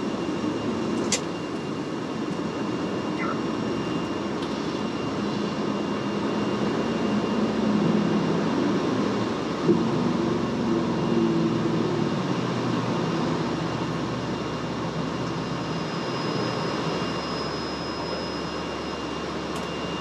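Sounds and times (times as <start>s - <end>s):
jet engine noise: 0.0s - 20.0s.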